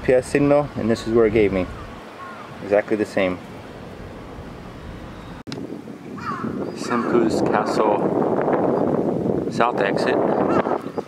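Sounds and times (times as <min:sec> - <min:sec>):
outdoor background hiss: 0:00.0 - 0:07.1
crow cawing: 0:01.7 - 0:02.6, 0:06.2 - 0:07.2.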